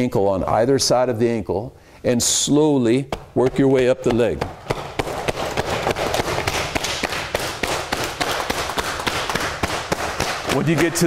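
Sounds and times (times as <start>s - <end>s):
cupped hands slapping leg: 3.1s - 11.0s.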